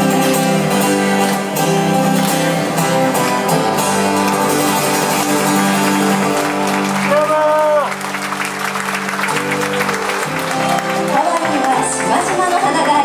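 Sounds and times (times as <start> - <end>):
live band music with guitar: 0.0 - 13.0
audience applause: 1.2 - 13.0.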